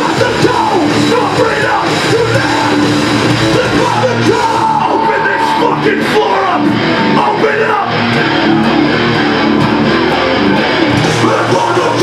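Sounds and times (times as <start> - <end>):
punk band playing live: 0.0 - 12.0
shouted vocals: 0.0 - 12.0.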